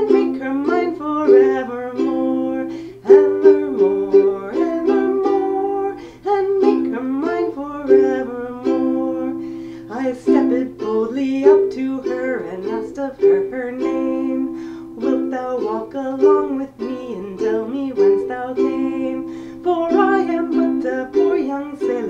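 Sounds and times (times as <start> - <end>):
ukulele strumming: 0.0 - 22.0
woman singing a folk ballad: 0.0 - 22.0.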